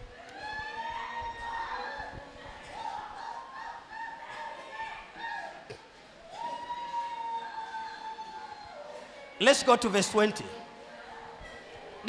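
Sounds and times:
congregation praying aloud: 0.4 - 5.7, 6.6 - 12.0.

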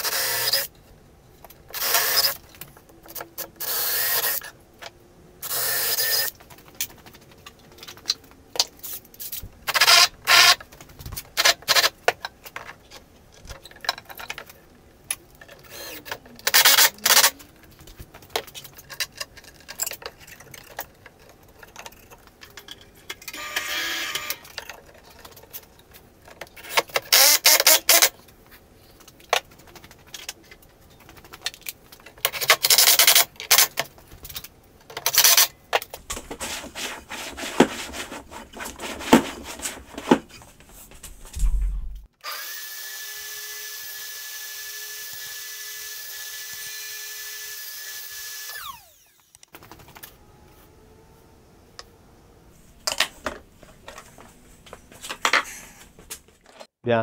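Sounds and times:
cordless drill driving screws: 1.8 - 2.4, 3.6 - 4.5, 27.1 - 28.1.

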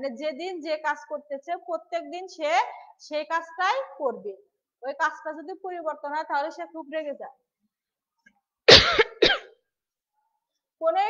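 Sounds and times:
woman speaking: 0.0 - 7.4
woman coughing: 8.7 - 9.6.

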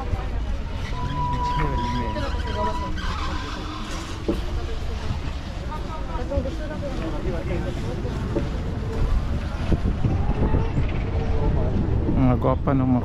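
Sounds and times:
people talking: 0.0 - 13.0
wind rumbling on microphone: 0.0 - 13.0.

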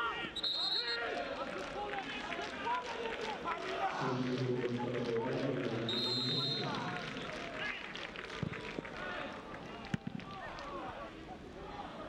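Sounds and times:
referee's whistle: 0.3 - 1.1, 5.9 - 6.8.

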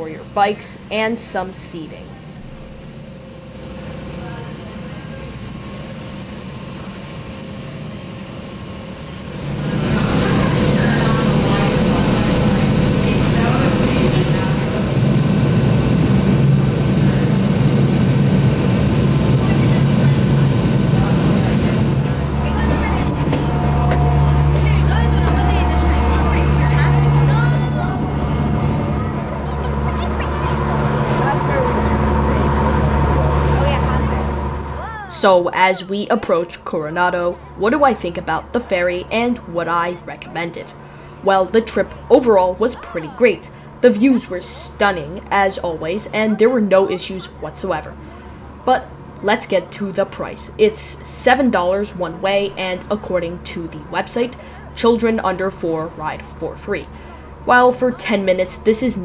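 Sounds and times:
ferry engines droning: 0.0 - 59.0.

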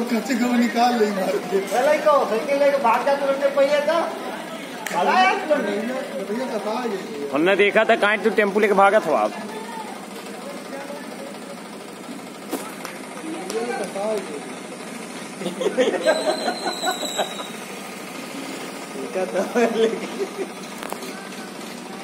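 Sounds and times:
people talking: 0.0 - 14.8, 18.9 - 22.0.

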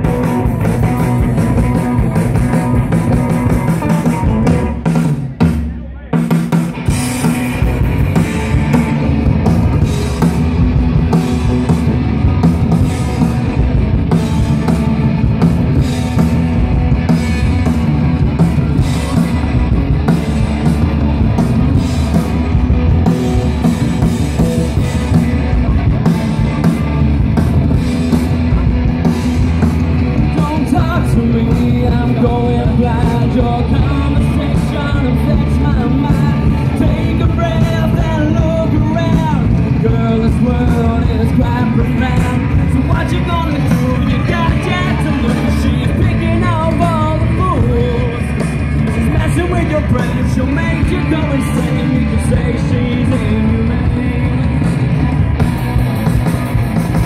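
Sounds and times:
live rock band: 0.0 - 57.0.

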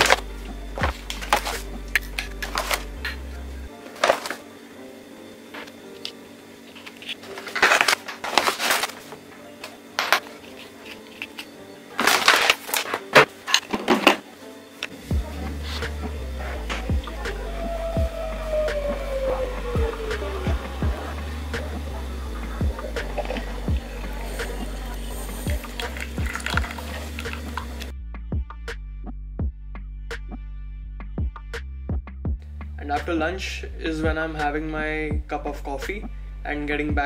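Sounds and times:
background music with bass line: 0.0 - 3.8, 14.9 - 37.0
paper bag crinkling: 3.9 - 4.4, 6.7 - 9.1, 10.6 - 13.1.

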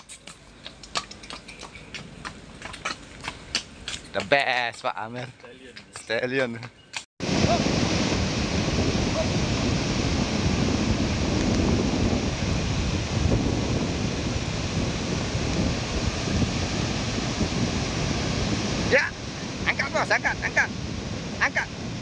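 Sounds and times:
ocean surf washing in: 7.2 - 22.0
wind buffeting microphone: 7.2 - 22.0.

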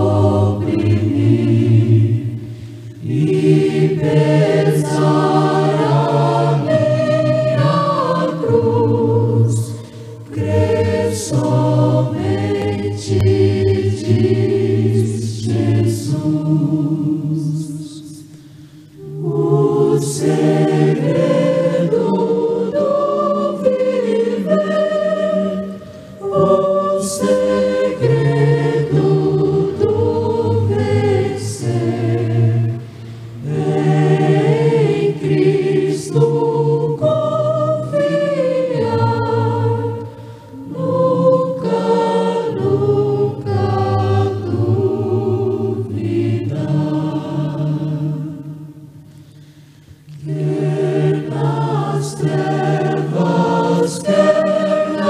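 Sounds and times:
choir singing a hymn: 0.0 - 55.0.

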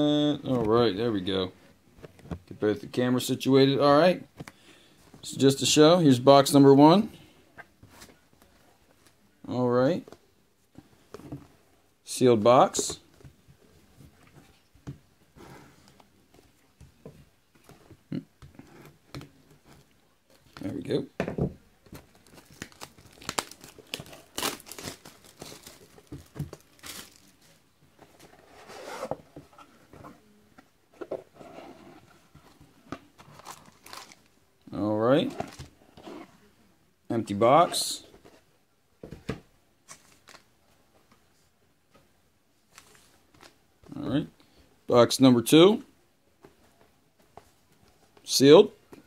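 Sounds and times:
plastic wrap crinkle: 22.1 - 27.6.

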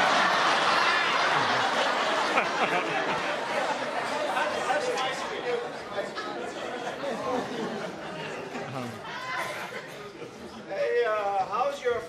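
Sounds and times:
chatter of many voices echoing: 0.0 - 12.0.

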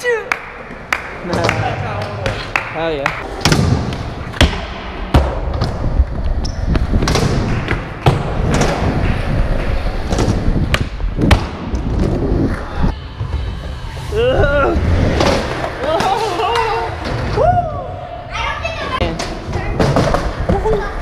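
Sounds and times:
skateboard wheels rolling on concrete: 0.1 - 21.0.

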